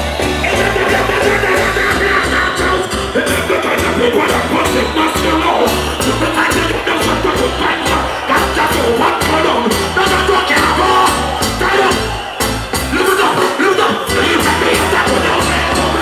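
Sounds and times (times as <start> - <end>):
reggae band playing: 0.0 - 16.0.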